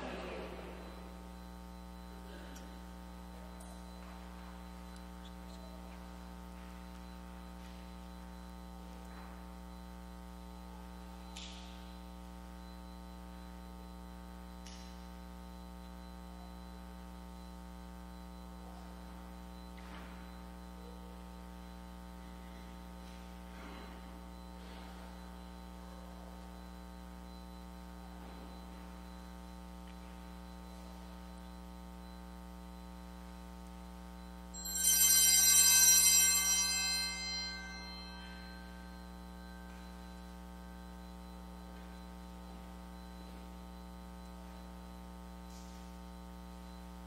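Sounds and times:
electrical mains hum: 0.0 - 47.0
musical tone: 34.6 - 39.0.

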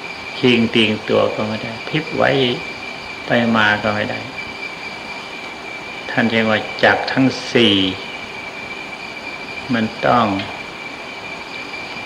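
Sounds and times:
high steady whine: 0.0 - 12.0
recording hiss: 0.0 - 12.0
man speaking: 0.4 - 2.6, 3.3 - 4.3, 6.1 - 8.1, 9.7 - 10.5.

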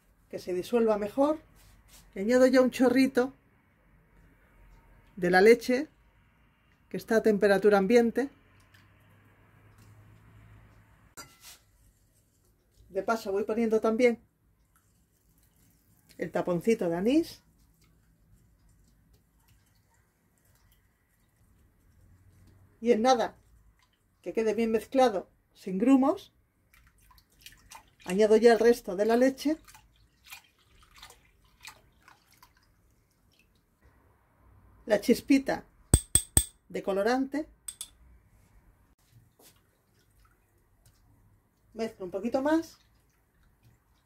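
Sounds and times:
woman speaking: 0.3 - 1.4, 2.2 - 3.4, 5.2 - 5.9, 6.9 - 8.4, 16.2 - 17.4, 24.2 - 26.3, 41.8 - 42.8
whisk stirring liquid in bowl: 11.2 - 13.1, 14.6 - 22.6.

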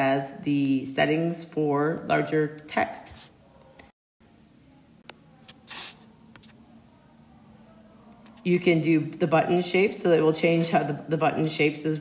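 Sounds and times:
short sharp hiss: 5.5 - 6.1.

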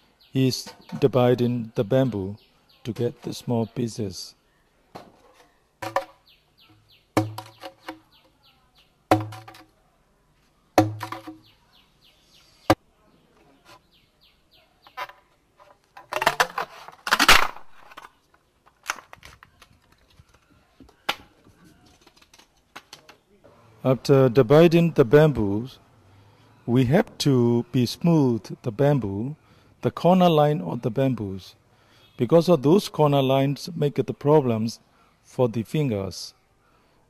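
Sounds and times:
bamboo being split: 15.9 - 18.1.

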